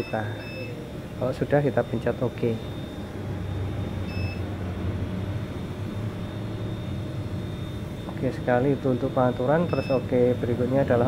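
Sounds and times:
steady low hum: 0.0s - 11.0s
short high beep: 6.2s - 10.1s.

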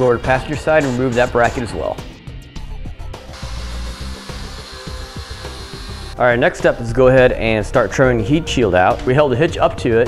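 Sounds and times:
background music: 0.0s - 10.0s
cutoff wheel cutting metal: 3.3s - 6.2s.

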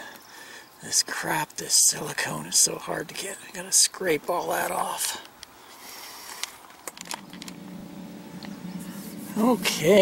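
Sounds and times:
faint hiss: 4.8s - 10.0s
low engine hum: 7.0s - 10.0s.

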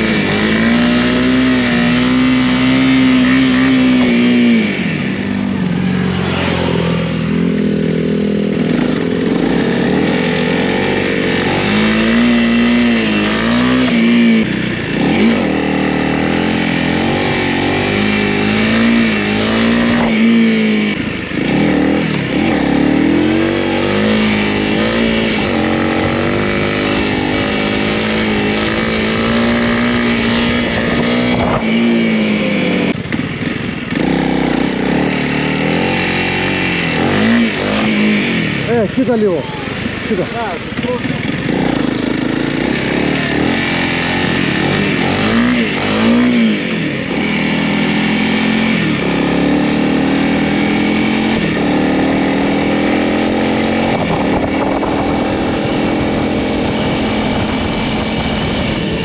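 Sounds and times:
motorcycle engine running: 0.0s - 59.0s
wind and road noise: 0.0s - 59.0s.

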